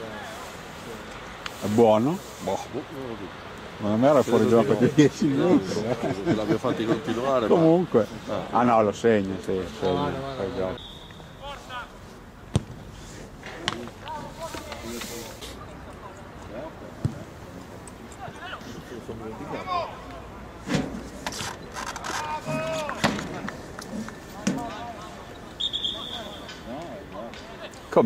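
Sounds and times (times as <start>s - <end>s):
referee whistle blast: 10.8s - 11.4s, 25.6s - 26.6s
players shouting: 18.1s - 20.4s, 22.0s - 27.8s.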